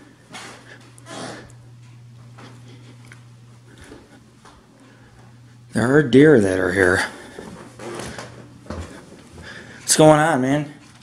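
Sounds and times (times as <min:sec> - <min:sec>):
muffled thumps on ceiling: 0:07.2 - 0:09.7.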